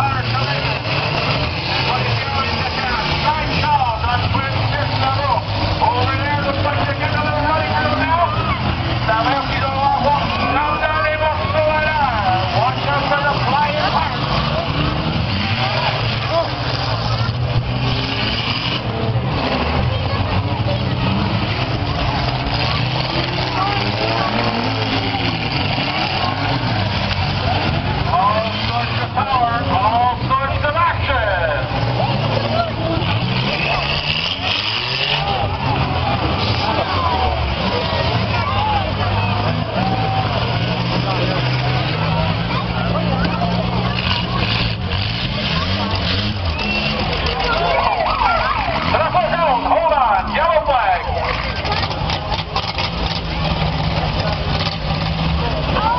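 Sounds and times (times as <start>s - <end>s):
car engines revving: 0.0s - 55.9s
crowd voices: 0.0s - 55.9s.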